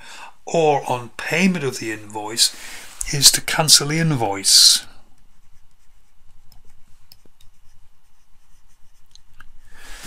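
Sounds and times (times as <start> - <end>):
pen scratching on paper: 5.2 - 9.3.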